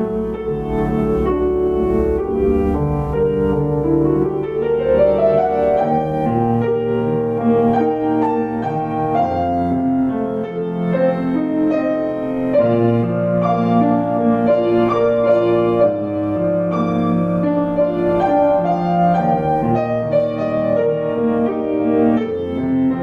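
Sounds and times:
solo piano improvisation: 0:00.0 - 0:23.0.

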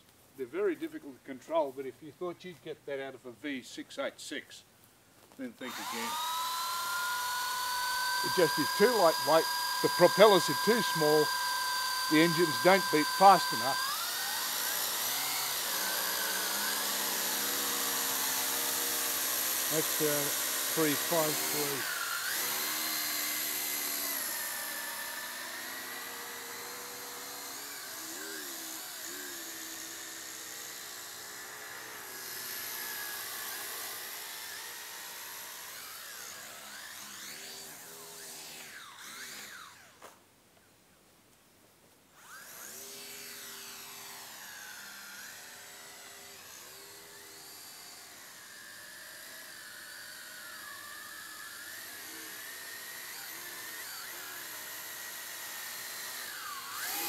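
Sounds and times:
toy drone motors whining: 0:05.6 - 0:40.1, 0:42.2 - 0:57.0.

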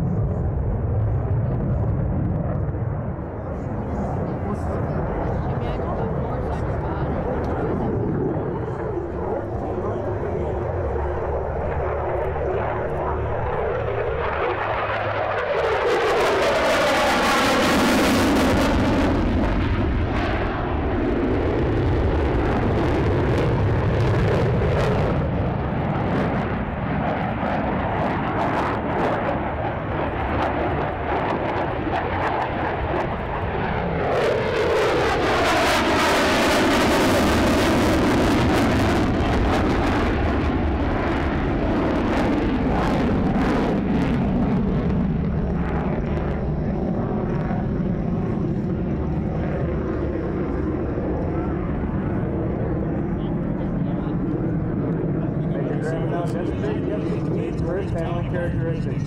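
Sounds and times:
jet engine roaring: 0:00.0 - 0:59.0.

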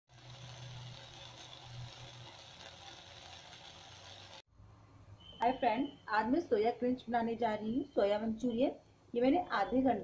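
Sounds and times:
food sizzling in a wok: 0:00.1 - 0:04.5.

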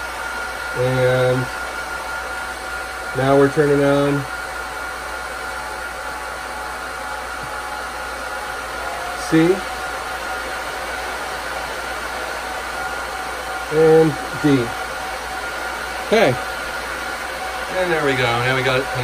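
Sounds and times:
cooling fans rushing: 0:00.0 - 0:19.0
steady high whine: 0:00.0 - 0:19.0.

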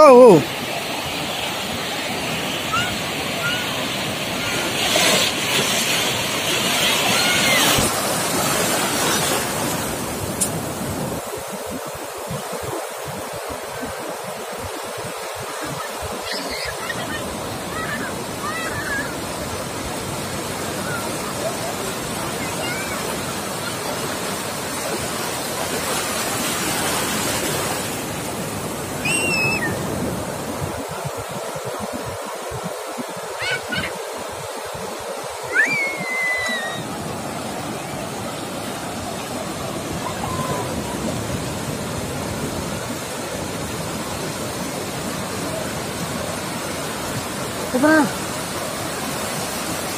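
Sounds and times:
ocean surf breaking: 0:00.0 - 0:49.9.

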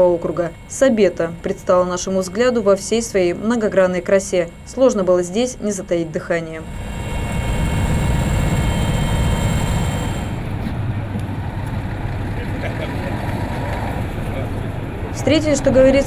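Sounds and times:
helicopter engines and rotor: 0:00.0 - 0:16.0
high engine whine: 0:00.0 - 0:16.0.

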